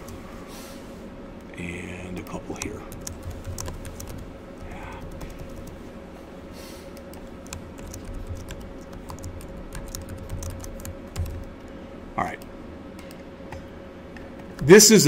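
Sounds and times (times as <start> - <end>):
faint electrical hum: 0.0 - 15.0
typing on computer keyboard: 2.2 - 5.8, 7.0 - 11.5.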